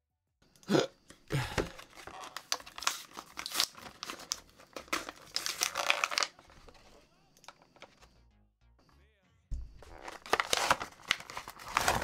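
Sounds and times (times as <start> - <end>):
plastic packaging crinkling: 1.7 - 6.9, 9.8 - 12.0.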